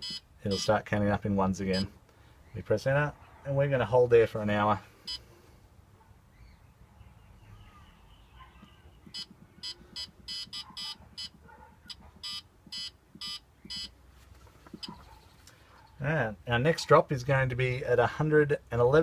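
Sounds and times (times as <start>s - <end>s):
short electronic keypad beeps: 0.0s - 0.7s, 9.1s - 14.0s.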